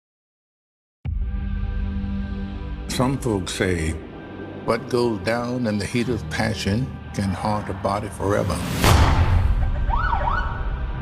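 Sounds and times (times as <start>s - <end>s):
siren wailing: 9.5s - 11.0s.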